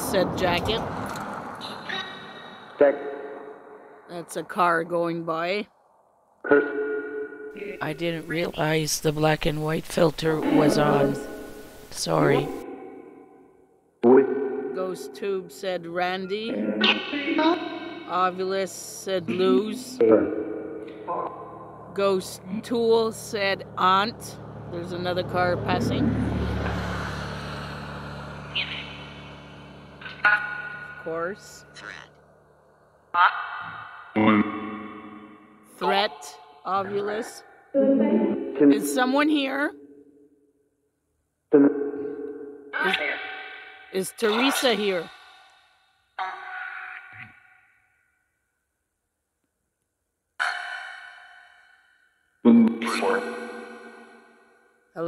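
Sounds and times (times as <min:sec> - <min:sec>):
car passing: 0:00.0 - 0:06.6, 0:07.8 - 0:13.0, 0:16.6 - 0:33.1
echoing voice-like sounds: 0:01.7 - 0:03.2, 0:07.6 - 0:11.3, 0:11.9 - 0:12.6, 0:14.0 - 0:26.2, 0:30.0 - 0:32.0, 0:33.2 - 0:34.6, 0:35.8 - 0:39.7, 0:44.0 - 0:45.1, 0:46.2 - 0:47.3, 0:50.4 - 0:51.0, 0:52.5 - 0:53.4.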